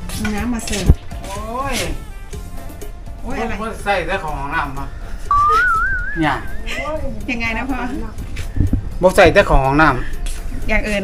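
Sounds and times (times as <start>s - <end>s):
whistled note wavering in pitch: 5.3s - 6.9s.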